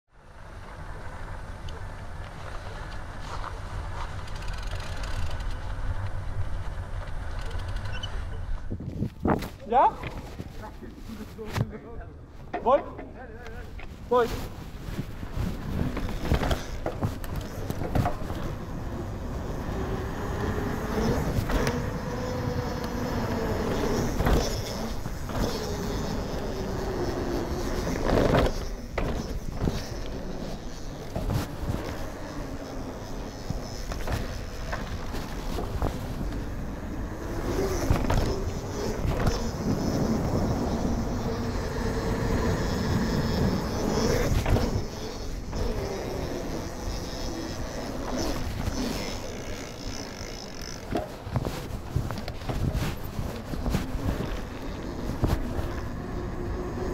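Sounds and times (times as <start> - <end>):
wind rushing over microphone: 8.6 - 10.6
tyre noise on concrete: 13.8 - 56.9
bike knocking over bumps: 15.6 - 55.9.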